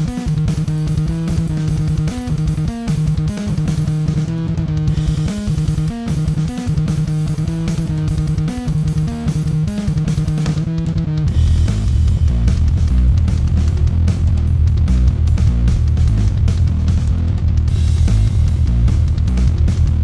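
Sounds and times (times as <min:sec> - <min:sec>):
fuzzed electric bass riff: 0:00.0 - 0:20.0.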